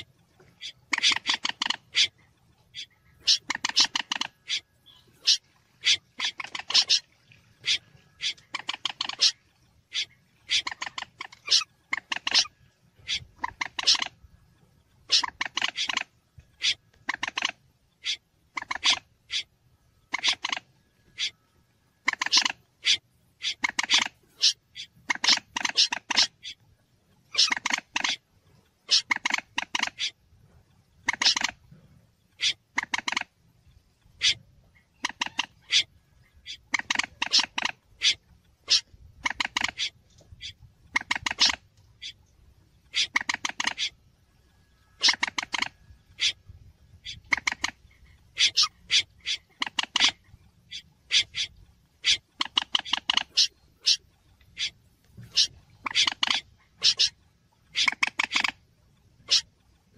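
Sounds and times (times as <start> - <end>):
faint low hum: 0.0 - 59.9
rattling bird calls: 0.0 - 59.9.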